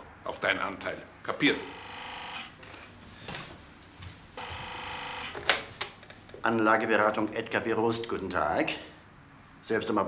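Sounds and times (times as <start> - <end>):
desk telephone ringing: 1.6 - 2.6, 4.4 - 5.5.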